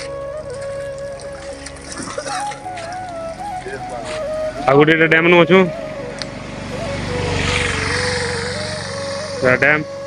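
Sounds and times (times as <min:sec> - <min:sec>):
engine running with low pulsing: 0:00.0 - 0:10.0
vehicle passing by: 0:00.0 - 0:10.0.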